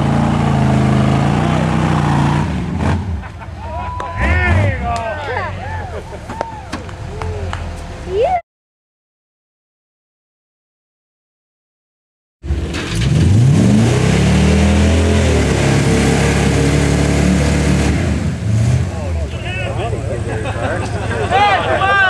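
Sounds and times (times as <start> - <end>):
off-road vehicle engine revving: 0.0 - 3.4, 4.0 - 8.1, 12.4 - 21.9
spectators shouting: 3.6 - 7.7, 20.8 - 22.0.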